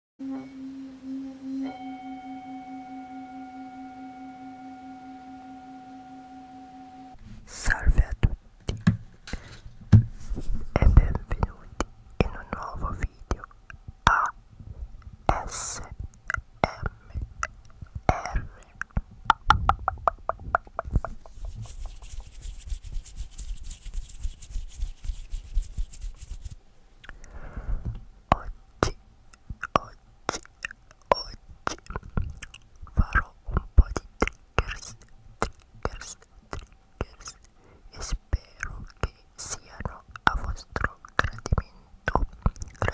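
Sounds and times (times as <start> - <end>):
singing bowl ringing: 0.2 - 7.2
hands rubbing on microphone: 10.1 - 11.6, 20.6 - 26.6, 34.6 - 35.0.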